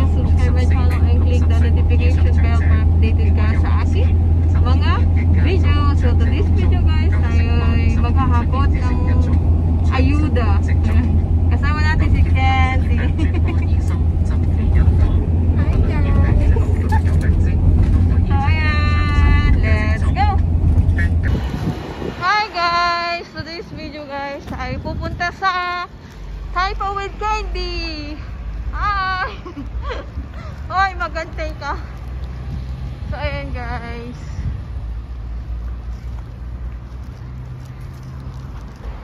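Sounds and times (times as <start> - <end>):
road and engine rumble: 0.0 - 39.0
street sound: 0.0 - 39.0.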